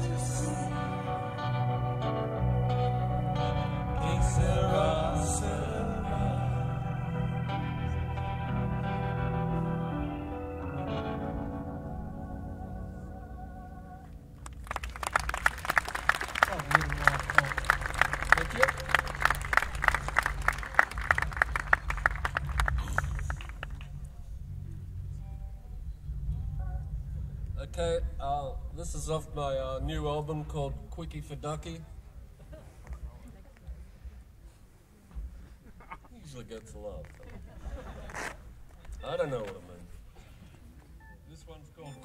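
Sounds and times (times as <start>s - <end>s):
audience clapping: 14.4s - 24.1s.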